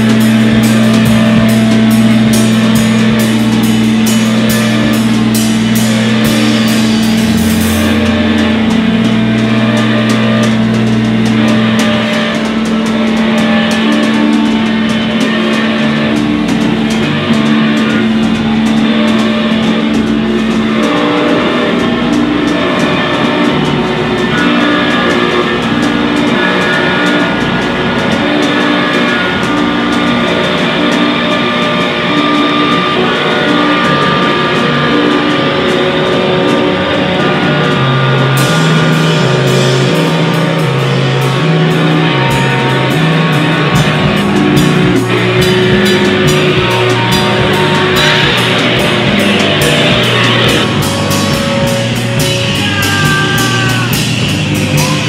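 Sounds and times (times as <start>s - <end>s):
distorted electric guitars droning: 0.0s - 55.0s
drums: 0.0s - 55.0s
low held tone: 0.0s - 55.0s.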